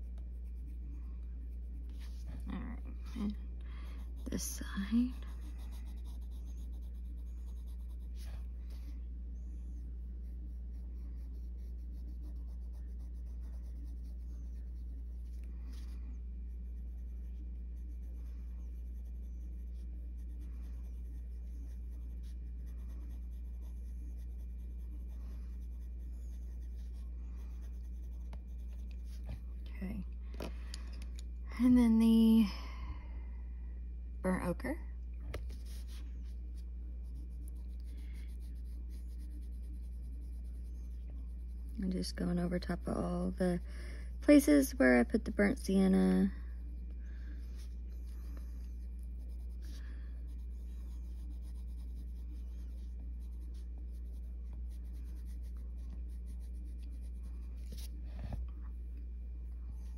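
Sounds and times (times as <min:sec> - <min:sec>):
pencil scratching on paper: 0:00.0 - 0:29.6, 0:35.4 - 0:43.6, 0:44.3 - 0:58.4
steady low hum: 0:00.0 - 0:59.9.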